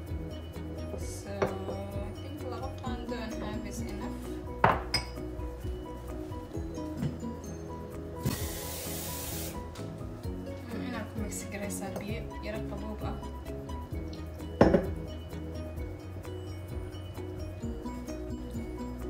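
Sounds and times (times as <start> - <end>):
background music: 0.0 - 19.0
metal spoon clinking ceramic bowl: 4.6 - 5.3
burst of hiss: 8.2 - 9.7.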